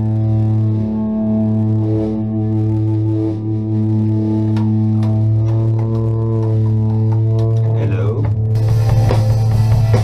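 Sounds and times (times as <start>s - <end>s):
low droning note: 0.0s - 10.0s.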